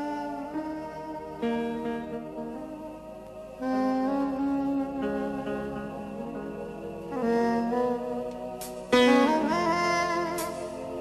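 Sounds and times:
live jazz band playing: 0:03.6 - 0:11.0.

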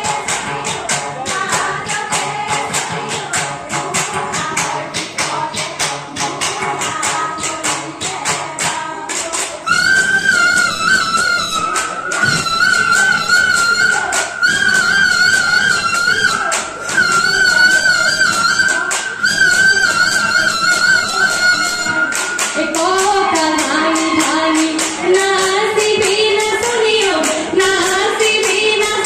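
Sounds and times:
hand percussion strikes: 0:00.0 - 0:29.0
women singing: 0:00.0 - 0:29.0.

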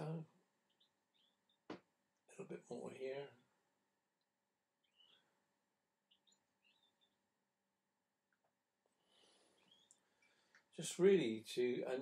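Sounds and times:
faint high chirps: 0:00.0 - 0:01.8, 0:04.2 - 0:07.4, 0:08.3 - 0:10.6.

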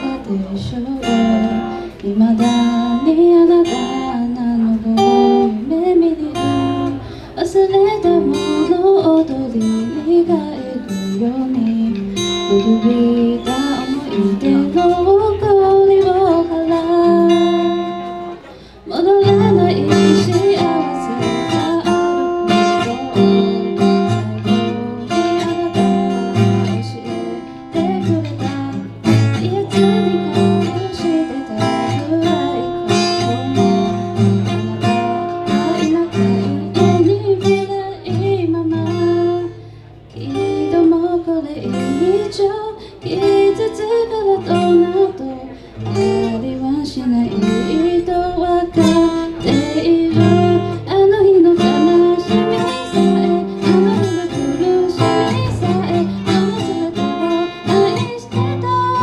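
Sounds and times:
acoustic guitar strumming: 0:00.0 - 0:59.0
woman singing: 0:00.0 - 0:59.0.

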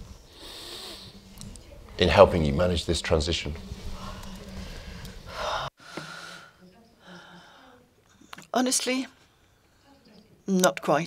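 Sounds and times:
breath intake near microphone: 0:00.0 - 0:01.4.

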